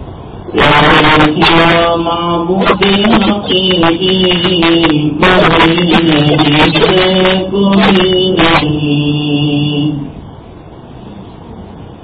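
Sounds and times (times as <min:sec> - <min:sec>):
man reciting in melodic chant: 0:00.4 - 0:10.2.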